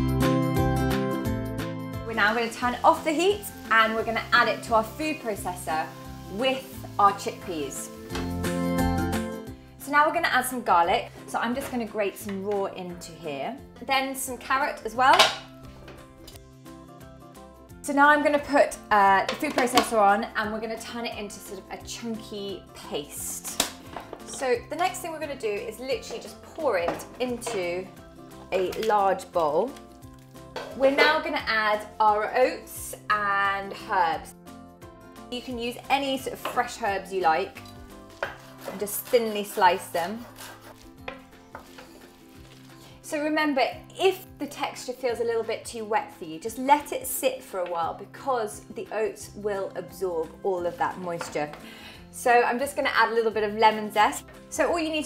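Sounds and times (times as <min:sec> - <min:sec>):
knife chopping on wooden board: 0:38.2 - 0:42.1.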